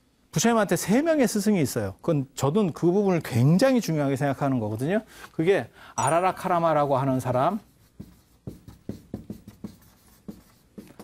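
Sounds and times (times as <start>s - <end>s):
chalk writing on a blackboard: 7.1s - 11.0s.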